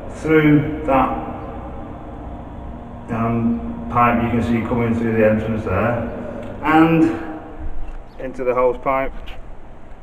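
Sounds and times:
steady background noise: 0.0s - 10.0s
person speaking: 3.0s - 7.6s.

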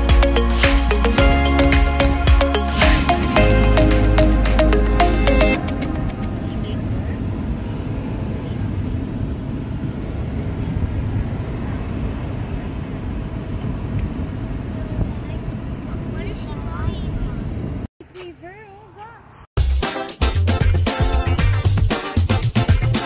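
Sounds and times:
car cabin road and engine rumble: 5.6s - 19.2s.

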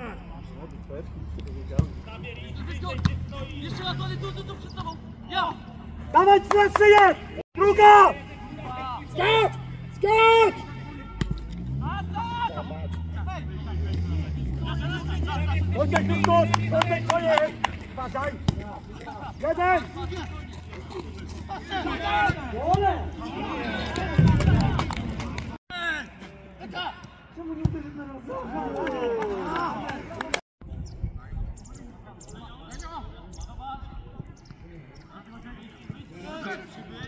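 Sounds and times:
distant voices shouting: 2.0s - 25.0s
men calling out: 2.2s - 24.6s.

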